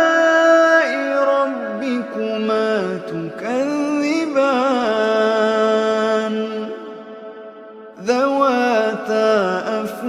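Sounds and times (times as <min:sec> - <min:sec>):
person reciting in a drawn-out note: 0:00.0 - 0:10.0.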